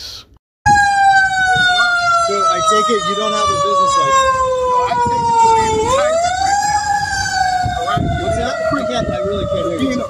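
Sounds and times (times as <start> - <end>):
emergency vehicle siren wailing: 0.6 - 10.0.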